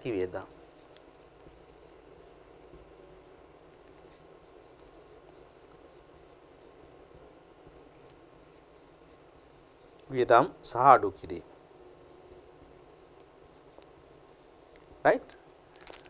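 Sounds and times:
marker pen on whiteboard: 0.0 - 15.4.

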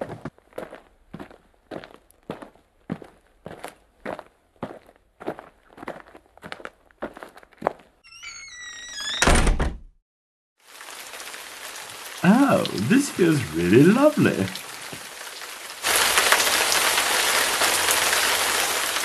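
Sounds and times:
footsteps walking: 0.0 - 7.9
door creaking on hinges: 8.0 - 9.9
door shutting with heavy thud: 8.9 - 9.9
steady hiss: 12.1 - 15.1.

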